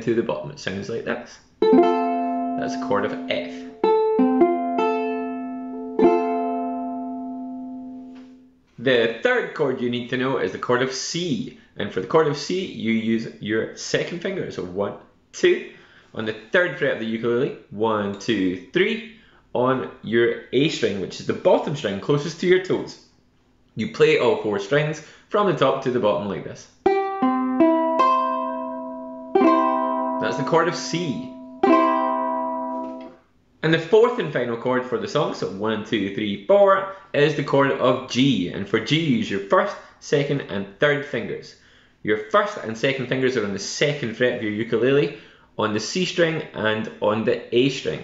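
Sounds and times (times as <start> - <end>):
ukulele chord strum ringing: 1.6 - 8.5, 26.9 - 33.2.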